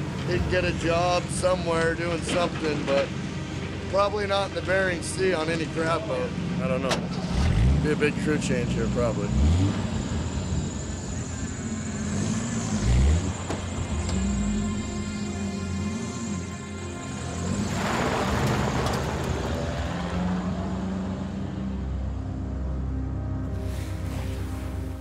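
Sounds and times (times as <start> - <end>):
background music: 0.0 - 25.0
truck engine pulling away: 0.0 - 25.0
tyres hissing on wet surface: 23.5 - 25.0.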